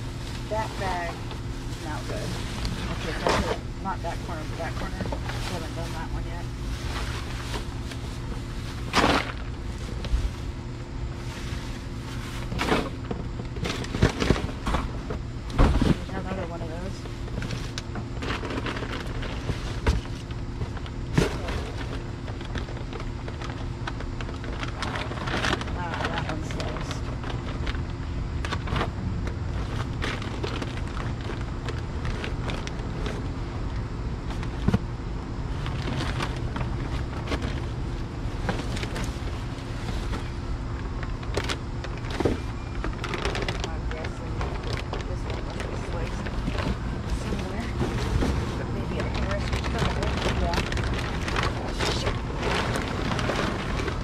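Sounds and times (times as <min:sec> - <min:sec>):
plastic trash bags rustling: 0:00.0 - 0:54.0
steady low hum: 0:00.0 - 0:54.0.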